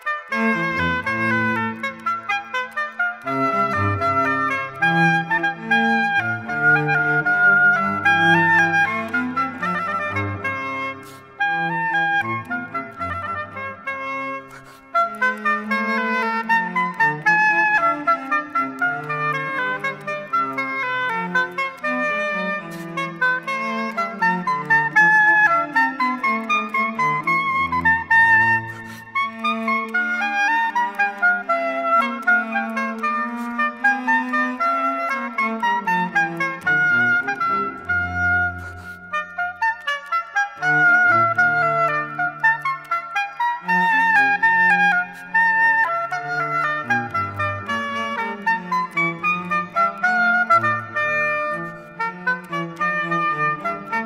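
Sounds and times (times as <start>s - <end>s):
oboe melody: 0.0s - 54.0s.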